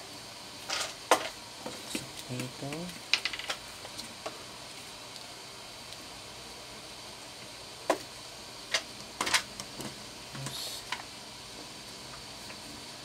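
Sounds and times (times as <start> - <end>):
faint steady hiss: 0.0 - 13.0.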